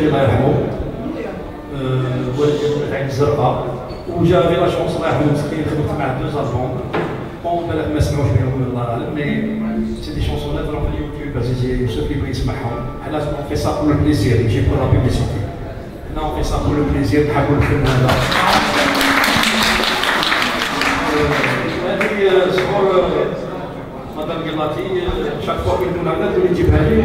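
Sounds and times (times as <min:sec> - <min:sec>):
man speaking into a microphone: 0:00.0 - 0:00.9, 0:01.7 - 0:18.9, 0:21.0 - 0:27.0
man's voice: 0:07.5 - 0:15.4, 0:24.2 - 0:27.0
many hands clapping: 0:17.6 - 0:22.9.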